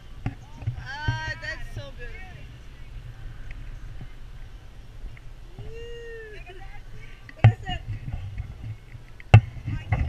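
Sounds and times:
low rumble on microphone: 0.0 - 10.0.

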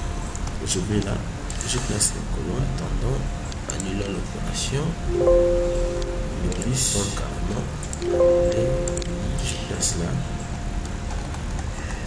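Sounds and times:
low hum: 5.0 - 10.9.

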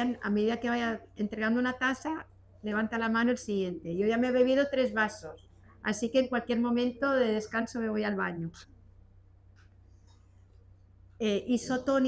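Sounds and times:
faint low hum: 0.0 - 12.0
faint soft sounds: 7.0 - 12.0.

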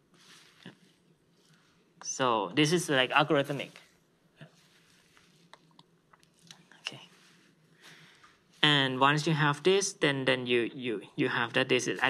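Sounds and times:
soft breath: 0.0 - 2.0, 3.6 - 5.6, 6.6 - 8.7.

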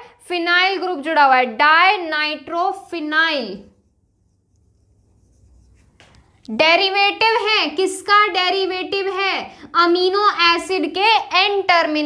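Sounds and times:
marker writing on whiteboard: 3.6 - 6.6.

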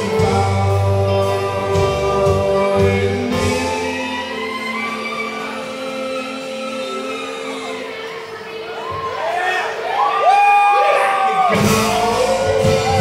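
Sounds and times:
string band playing: 0.0 - 10.0, 11.4 - 13.0.

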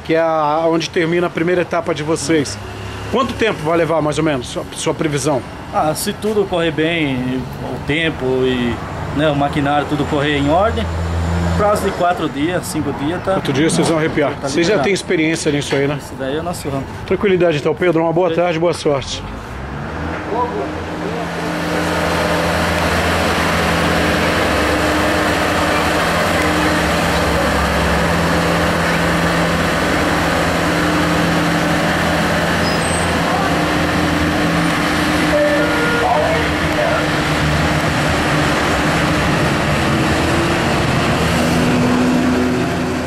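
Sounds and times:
heavy diesel engine running: 0.0 - 17.7, 19.2 - 43.0.

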